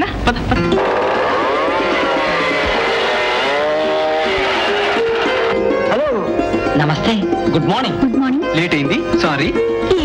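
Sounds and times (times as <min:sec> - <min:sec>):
motorcycle engines revving: 0:00.8 - 0:05.6.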